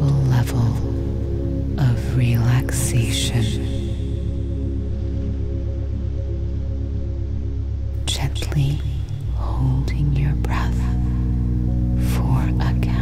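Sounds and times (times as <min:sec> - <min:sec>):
person whispering: 0:00.0 - 0:00.8, 0:01.8 - 0:04.1, 0:08.0 - 0:11.4, 0:12.0 - 0:13.0
ambient low sustained tones: 0:00.0 - 0:13.0.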